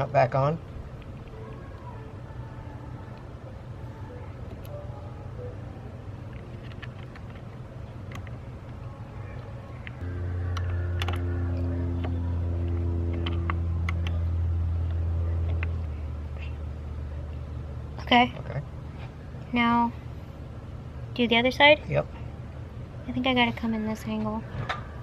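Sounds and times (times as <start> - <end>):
low motor hum: 0.0 - 25.0.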